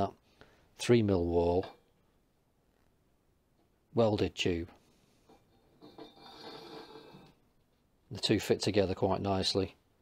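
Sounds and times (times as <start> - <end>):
steel tube scraping inside tube: 5.3 - 7.4.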